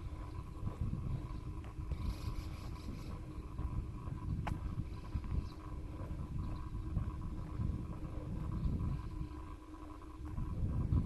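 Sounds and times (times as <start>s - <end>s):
faint steady hum: 0.0s - 11.0s
wind buffeting microphone: 0.0s - 11.0s.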